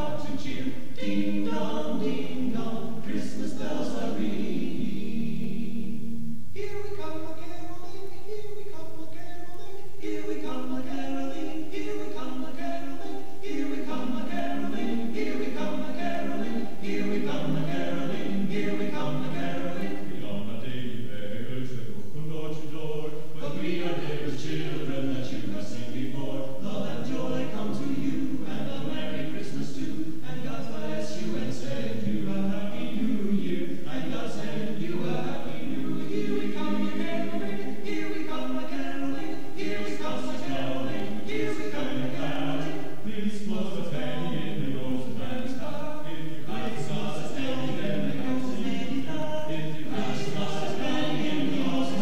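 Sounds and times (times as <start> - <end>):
choir singing a cappella: 0.0 - 52.0.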